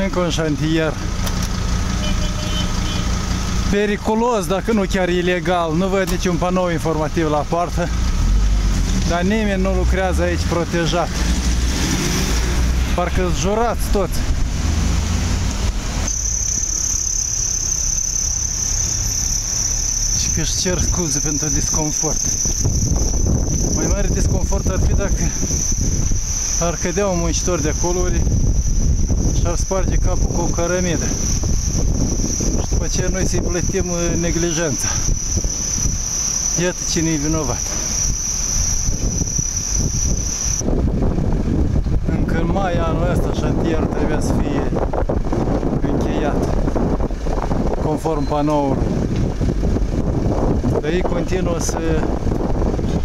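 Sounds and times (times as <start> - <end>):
vehicle rumbling past: 0.5 - 43.6
wind on microphone: 11.0 - 53.0
high-pitched insect trill: 16.0 - 40.7
steady high-pitched whine: 16.0 - 40.7.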